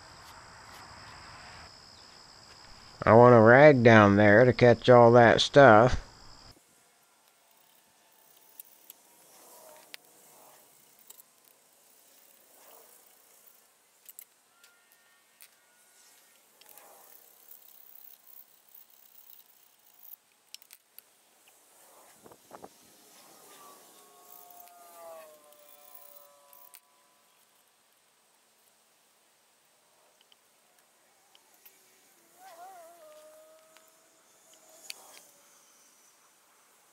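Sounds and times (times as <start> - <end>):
faint scattered clicks: 30.1 - 33.9, 34.5 - 35.3.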